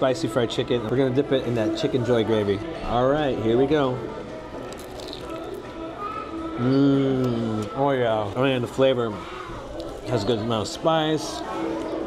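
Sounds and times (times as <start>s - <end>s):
quiet background music: 0.0s - 12.0s
chewing: 4.6s - 5.8s, 9.2s - 10.1s
faint crunch of biting: 4.6s - 5.8s.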